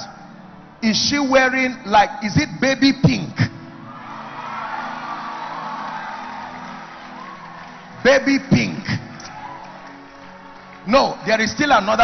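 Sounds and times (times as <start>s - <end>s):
soft background music with held chords: 0.0s - 12.0s.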